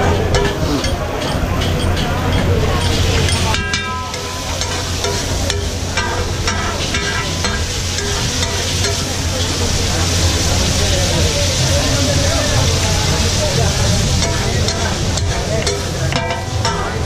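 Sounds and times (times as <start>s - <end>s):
food sizzling on griddle: 0.0s - 17.0s.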